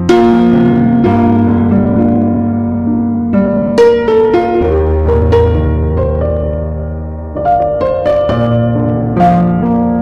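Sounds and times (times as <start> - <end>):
slow solo piano: 0.0 - 10.0.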